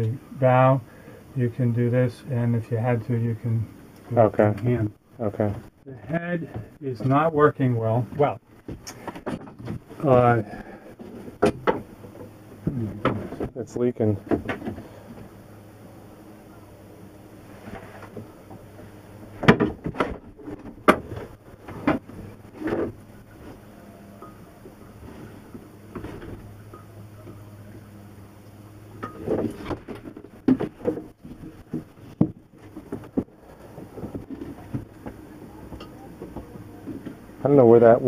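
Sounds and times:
steady low hum: 0.0s - 38.0s
knocks and bumps of handling: 8.1s - 13.6s, 14.2s - 15.3s, 17.6s - 23.6s, 29.0s - 37.2s.

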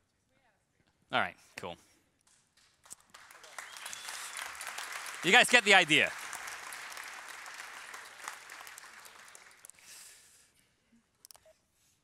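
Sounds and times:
audience applauding: 3.0s - 9.8s.

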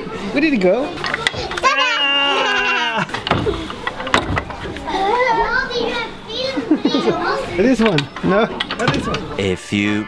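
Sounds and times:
young children babbling: 1.4s - 3.6s.

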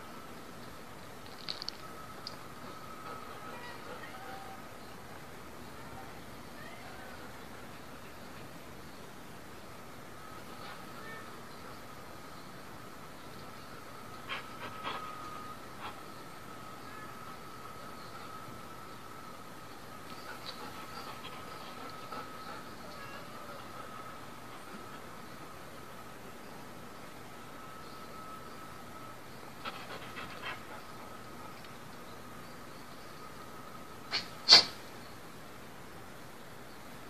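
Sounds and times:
faint high-pitched whine: 0.0s - 37.0s
steady hiss: 0.0s - 37.0s
animal breathy puffs: 20.1s - 25.1s, 29.6s - 31.1s.

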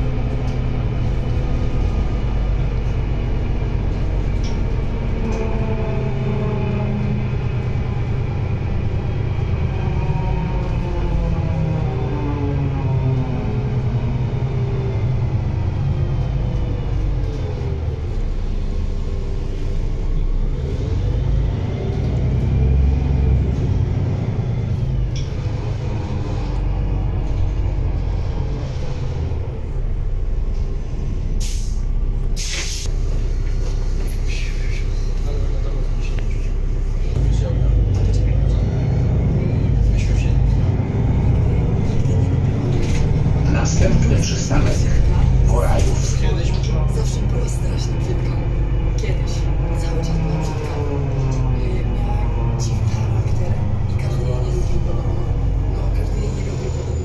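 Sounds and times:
bus diesel engine under load: 0.0s - 57.0s.

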